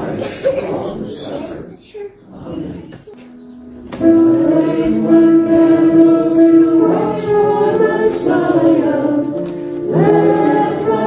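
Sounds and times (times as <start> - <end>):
group singing in church: 0.0 - 1.6, 2.4 - 11.0.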